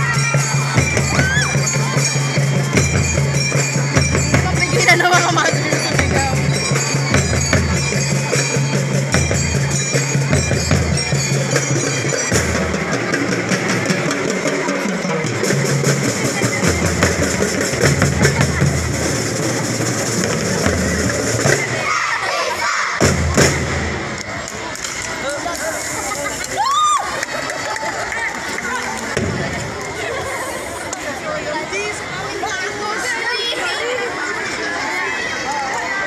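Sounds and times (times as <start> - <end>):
crowd cheering and shouting: 0.0 - 36.0
bass drum beat: 3.9 - 6.6.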